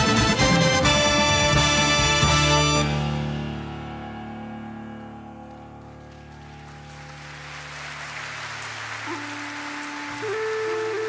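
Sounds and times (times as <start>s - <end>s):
big band sustained chord: 0.0s - 10.8s
bamboo flute melody: 8.8s - 11.0s.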